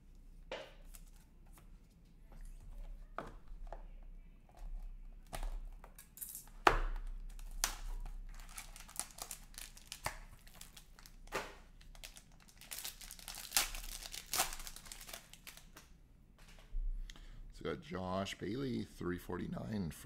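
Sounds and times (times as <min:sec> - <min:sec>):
packaging crinkling and tearing: 0:07.2 - 0:15.8.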